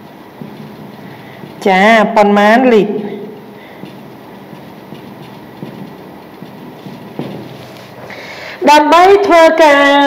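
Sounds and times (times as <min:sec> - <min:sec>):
marker scratching on whiteboard: 0:00.0 - 0:08.1
room noise hum: 0:00.0 - 0:10.0.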